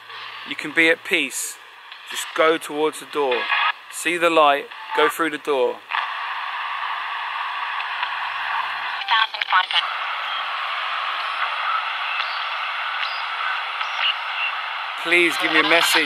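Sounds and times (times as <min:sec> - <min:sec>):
radio static hiss: 0:00.0 - 0:16.0
clipped radio voice fragments: 0:02.1 - 0:05.8, 0:09.0 - 0:12.3, 0:15.0 - 0:16.0.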